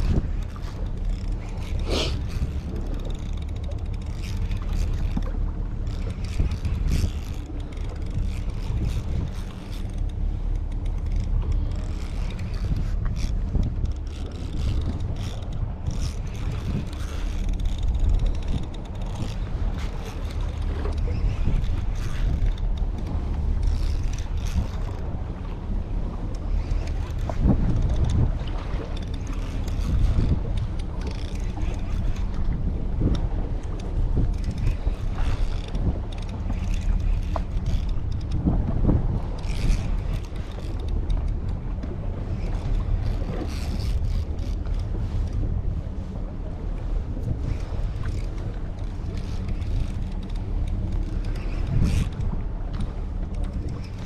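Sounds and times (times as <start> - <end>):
wind rumbling on microphone: 0.0 - 54.0.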